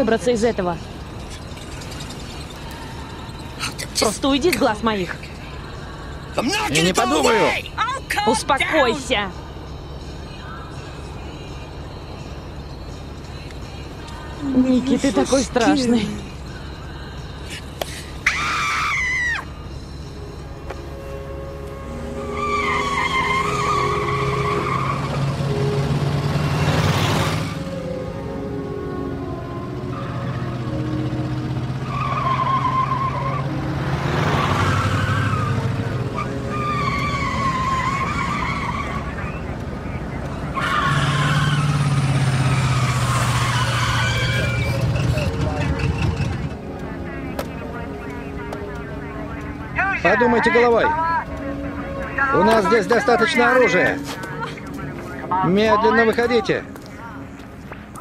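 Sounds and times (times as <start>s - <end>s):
tyres squealing: 0.0s - 9.3s, 14.1s - 19.7s, 21.0s - 58.0s
car engines running hard: 0.0s - 58.0s
cars passing by: 0.0s - 58.0s.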